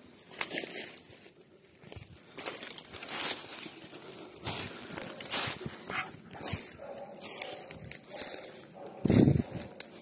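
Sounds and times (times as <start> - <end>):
dog barking: 5.9 - 10.0.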